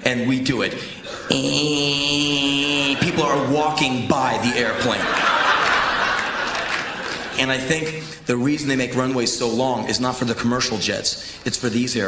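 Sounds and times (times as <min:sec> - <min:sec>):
man imitating plane engine drone: 0:01.2 - 0:02.9.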